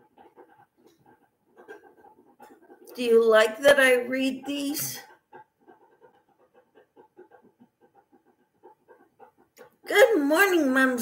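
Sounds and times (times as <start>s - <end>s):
dog panting: 0.0s - 11.0s.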